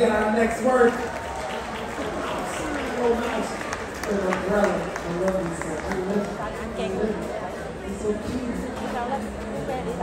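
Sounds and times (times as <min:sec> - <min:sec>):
people talking in a large hall: 0:00.0 - 0:10.0.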